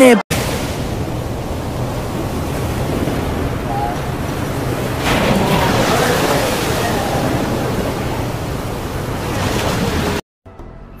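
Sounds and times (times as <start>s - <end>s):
strong wind: 0.3s - 10.2s
waves breaking against ship bow: 0.3s - 10.2s
wind buffeting microphone: 0.4s - 10.2s.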